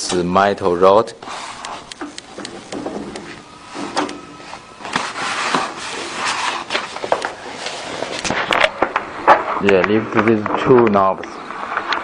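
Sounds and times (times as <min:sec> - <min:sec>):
plastic film rustling and crinkling: 0:02.4 - 0:12.0.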